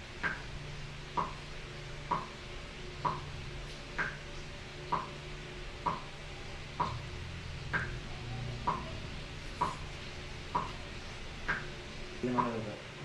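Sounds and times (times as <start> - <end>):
low steady drone: 0.0 - 13.0
evenly spaced ticks: 0.2 - 0.5, 1.1 - 1.4, 2.1 - 2.3, 3.0 - 3.3, 4.0 - 4.3, 4.9 - 5.2, 5.8 - 6.1, 6.8 - 7.0, 11.4 - 12.6.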